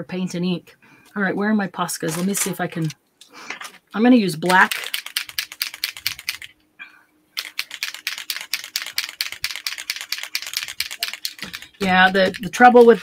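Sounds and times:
paint marker clicking: 0:07.4 - 0:12.7.

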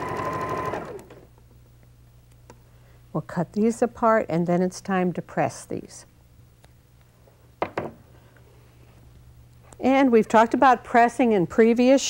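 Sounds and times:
low steady hum: 0:00.8 - 0:12.0.

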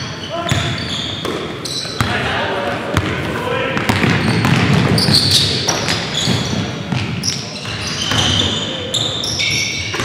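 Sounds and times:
shoe squeaks: 0:00.0 - 0:02.1, 0:04.2 - 0:10.0
echoing voices: 0:00.0 - 0:10.0
basketball bouncing on wooden floor: 0:03.8 - 0:08.4.

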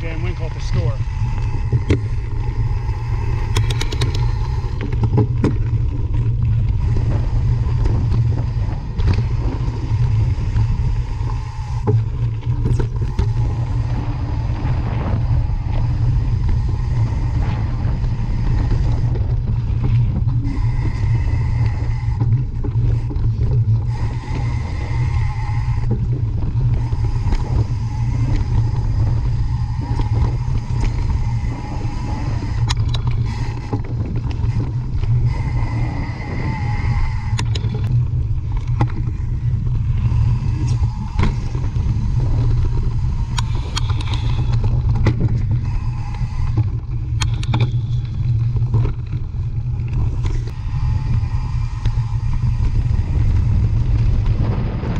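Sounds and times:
low rumble of wind buffeting: 0:00.0 - 0:54.9
bike clicks and rattles: 0:00.6 - 0:35.8, 0:37.2 - 0:54.9.

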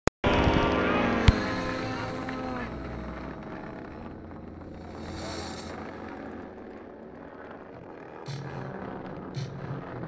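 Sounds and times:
model airplane engine running: 0:00.2 - 0:10.0.

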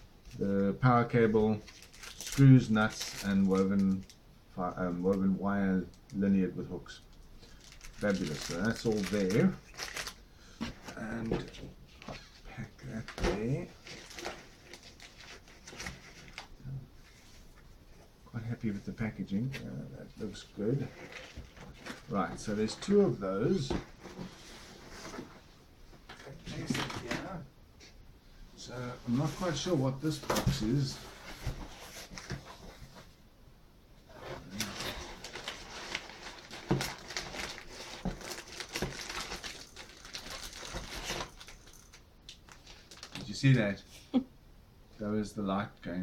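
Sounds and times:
cardboard and paper rustling: 0:01.5 - 0:04.1, 0:07.5 - 0:16.5, 0:20.2 - 0:25.5, 0:26.1 - 0:27.3, 0:29.0 - 0:33.2, 0:34.2 - 0:43.4.

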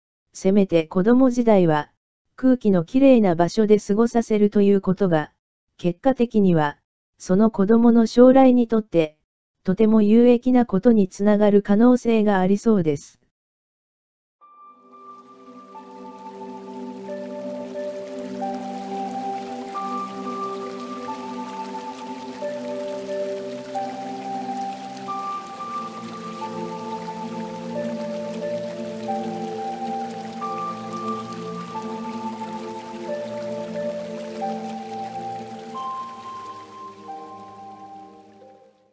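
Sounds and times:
calm background music: 0:14.4 - 0:38.9
running water: 0:14.8 - 0:38.8.

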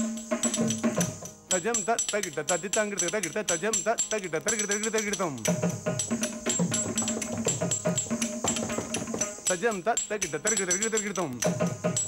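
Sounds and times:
drum: 0:00.0 - 0:01.9, 0:04.5 - 0:09.7, 0:10.4 - 0:12.0
small hand cymbals: 0:00.0 - 0:12.0.

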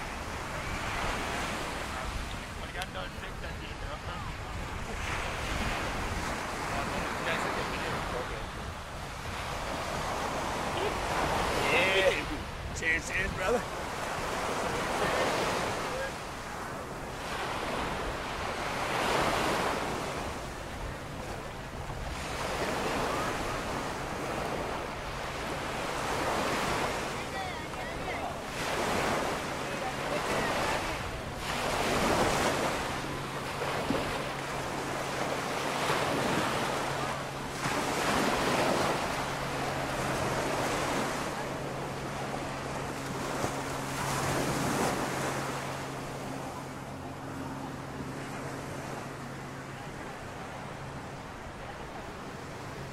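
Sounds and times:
wind on microphone: 0:00.0 - 0:02.6, 0:03.2 - 0:11.6
small surf breaking on sand: 0:00.0 - 0:49.6.

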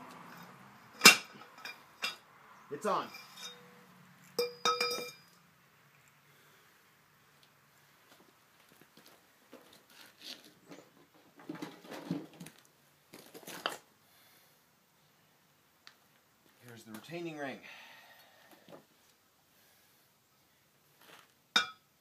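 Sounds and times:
metal pipe clanking: 0:03.1 - 0:03.7, 0:04.4 - 0:05.3.

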